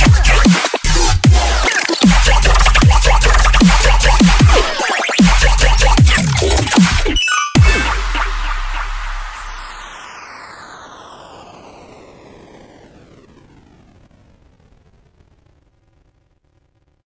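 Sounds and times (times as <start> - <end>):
deep sub-bass: 0.0 - 9.9
electronic impact: 6.0 - 10.3.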